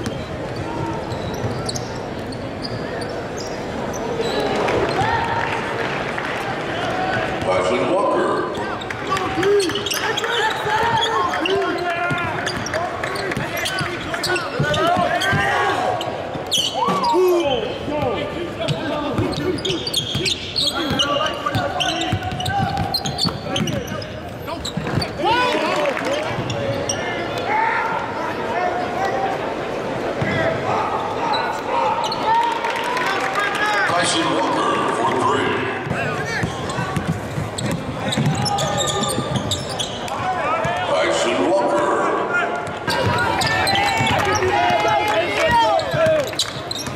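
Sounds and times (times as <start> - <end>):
crowd voices and shouts: 0.0 - 46.9.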